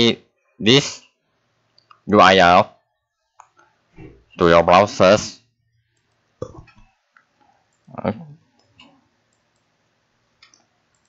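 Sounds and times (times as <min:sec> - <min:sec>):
computer mouse clicks: 0:08.6 - 0:09.7, 0:10.4 - 0:11.0.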